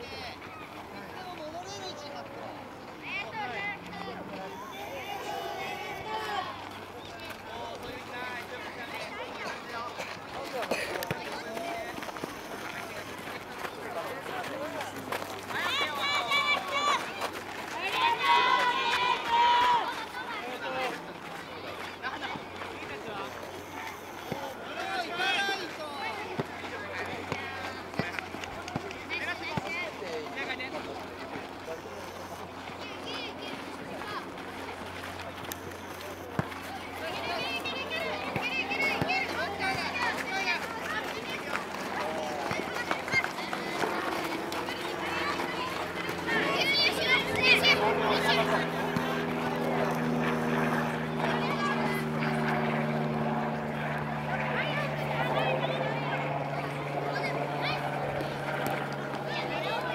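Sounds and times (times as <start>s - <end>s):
voices shouting and calling: 0.0s - 59.9s
engine-like mechanical drone: 3.4s - 59.9s.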